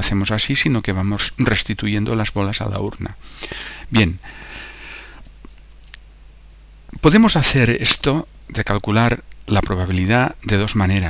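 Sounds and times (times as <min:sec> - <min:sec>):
man speaking: 0:00.0 - 0:03.2, 0:03.9 - 0:04.3, 0:07.0 - 0:11.0
faint low hum: 0:00.0 - 0:11.0
man breathing in: 0:03.2 - 0:05.2.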